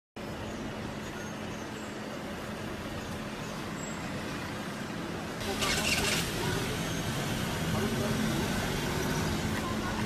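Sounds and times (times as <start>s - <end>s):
street traffic engine hum: 0.2s - 10.0s.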